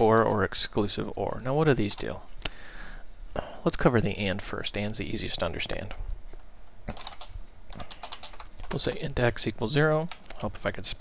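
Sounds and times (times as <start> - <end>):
computer keyboard typing: 6.9 - 9.0.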